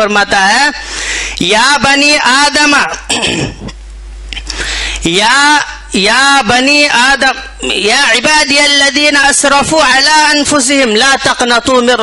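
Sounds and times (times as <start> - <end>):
man clearing throat: 3.0 - 3.8.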